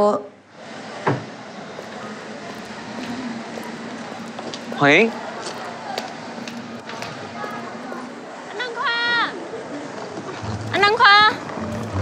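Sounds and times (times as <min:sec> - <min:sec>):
background ambience: 0:00.4 - 0:10.7, 0:11.3 - 0:12.0.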